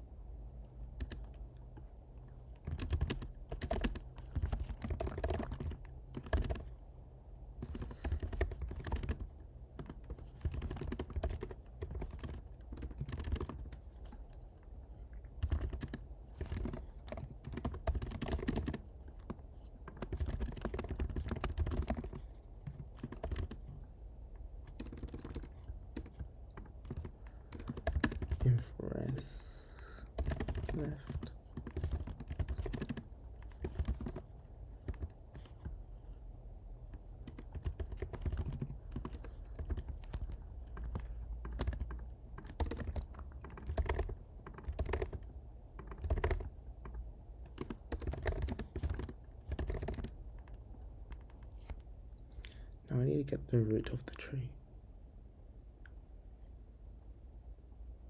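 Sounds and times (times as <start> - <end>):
keyboard typing: 0.6 - 6.8, 7.6 - 14.5, 15.1 - 23.9, 24.6 - 35.8, 36.9 - 52.6.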